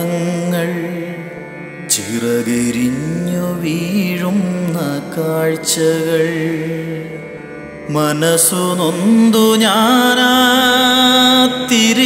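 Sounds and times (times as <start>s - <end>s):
man singing slow sad song: 0.0s - 1.3s, 1.9s - 7.2s, 7.9s - 12.0s
sustained instrumental accompaniment: 0.0s - 12.0s.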